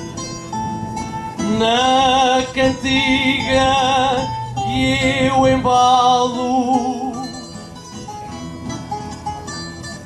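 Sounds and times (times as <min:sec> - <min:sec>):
guitar plucked notes: 0:00.0 - 0:10.0.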